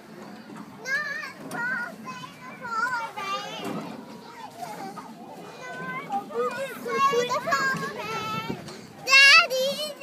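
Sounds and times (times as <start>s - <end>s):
murmur of people: 0.0s - 10.0s
children's high-pitched voices: 0.3s - 10.0s.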